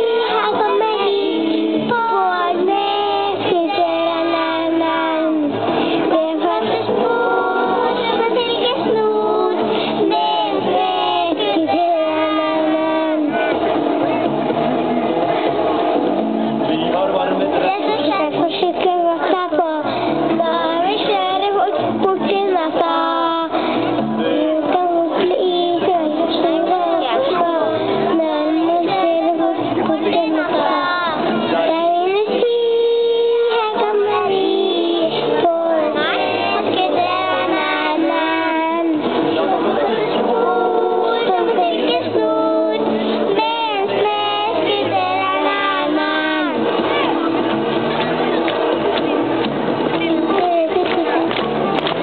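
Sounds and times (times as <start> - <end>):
children singing together: 0.0 - 13.6, 17.6 - 47.3.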